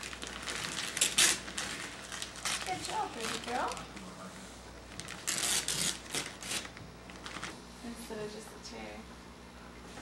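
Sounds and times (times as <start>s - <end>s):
paper bag and tissue rustling: 0.0s - 7.6s.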